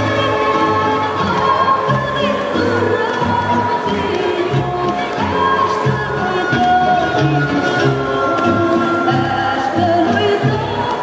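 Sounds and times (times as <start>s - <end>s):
folk music with group singing: 0.0s - 11.0s.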